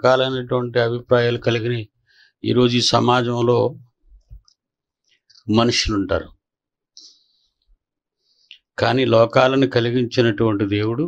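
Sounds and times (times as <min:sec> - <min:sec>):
man speaking into microphone: 0:00.0 - 0:03.9, 0:05.4 - 0:06.4, 0:08.8 - 0:11.0.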